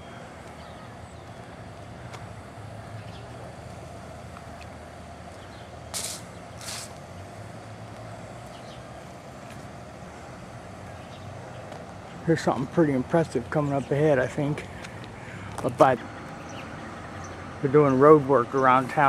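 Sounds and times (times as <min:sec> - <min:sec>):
street background hum: 0:00.0 - 0:19.0
short sharp hisses: 0:05.9 - 0:07.0.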